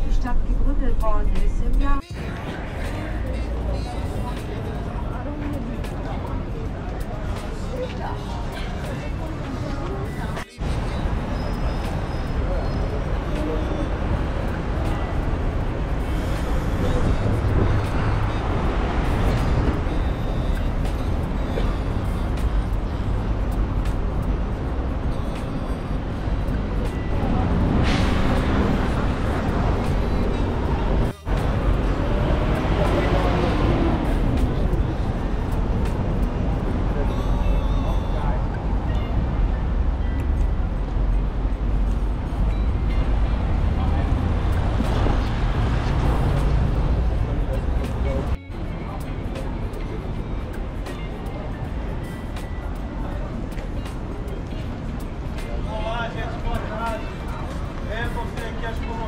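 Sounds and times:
music: 0.0s - 59.0s
road traffic: 0.0s - 59.0s
voices of passers-by: 0.0s - 59.0s.

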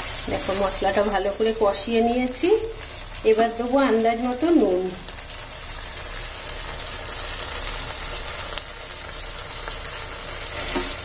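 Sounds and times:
paste sizzling in oil: 0.0s - 11.0s.

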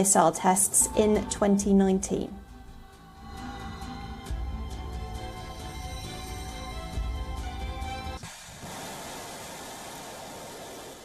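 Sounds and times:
music: 0.0s - 8.2s
rocket engine firing: 8.2s - 11.0s.

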